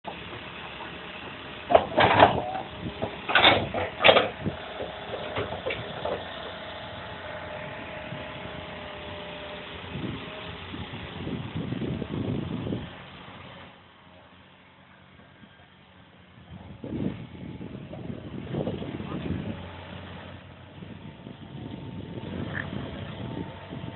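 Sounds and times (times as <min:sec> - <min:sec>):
excavator running: 0:00.1 - 0:23.9
bucket scraping and clanking on rock: 0:01.7 - 0:06.3.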